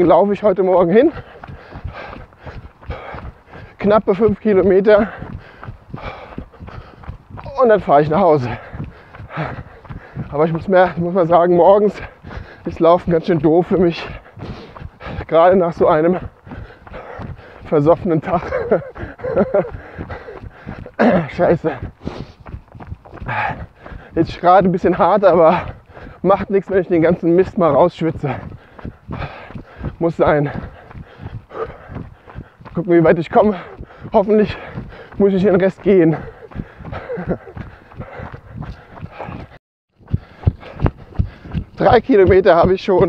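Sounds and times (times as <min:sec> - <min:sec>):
hard breathing: 0:00.0 - 0:43.0
running footsteps on dirt path: 0:00.0 - 0:43.0.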